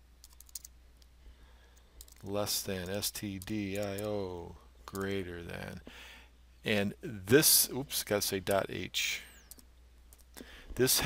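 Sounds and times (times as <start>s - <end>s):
computer keyboard keystrokes: 0.2s - 0.7s.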